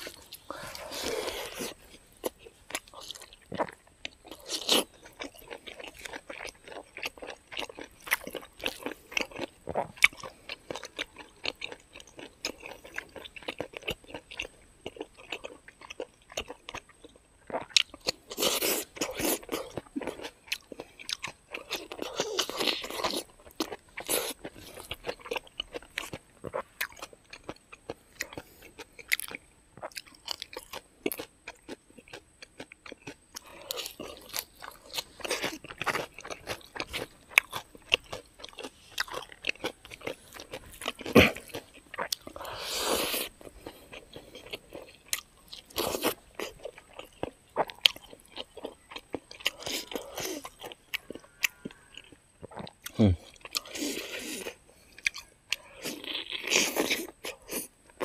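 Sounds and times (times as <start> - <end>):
person chewing and lip-smacking: 0.0 - 58.0.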